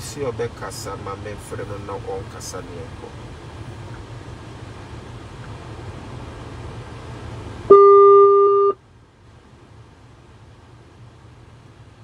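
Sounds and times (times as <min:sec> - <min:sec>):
car cabin road rumble: 0:00.0 - 0:12.0
electronic telephone beep: 0:07.7 - 0:08.8.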